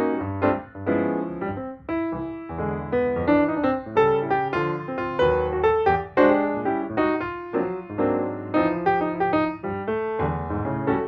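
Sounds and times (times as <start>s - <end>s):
slow piano melody: 0.0s - 11.0s.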